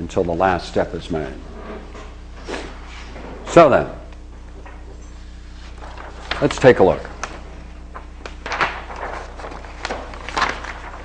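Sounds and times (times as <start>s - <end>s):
low electrical hum: 0.0s - 11.0s
paper page rustling: 5.5s - 11.0s.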